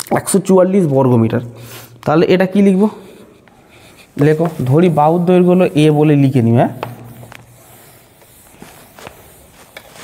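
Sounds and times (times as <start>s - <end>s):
man speaking: 0.0s - 3.2s, 4.2s - 7.0s
marker writing on whiteboard: 2.0s - 10.0s.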